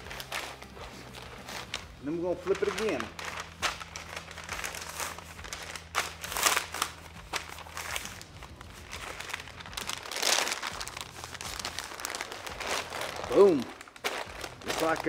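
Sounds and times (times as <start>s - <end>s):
butcher paper crinkling: 0.0s - 15.0s.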